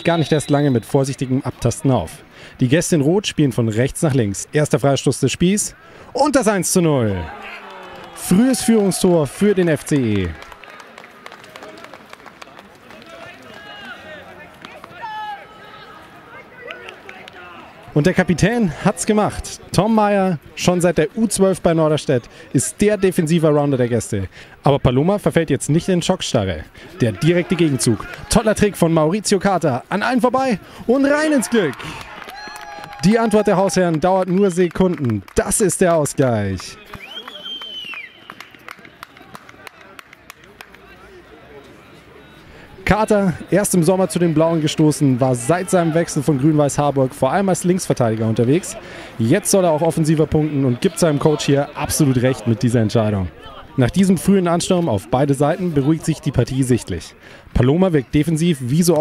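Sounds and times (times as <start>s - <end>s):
voices calling and shouting: 0.0s - 10.6s, 12.9s - 35.2s, 35.8s - 59.0s
hands clapping: 7.5s - 13.7s, 14.4s - 15.0s, 16.6s - 17.5s, 28.0s - 28.3s, 31.6s - 40.9s.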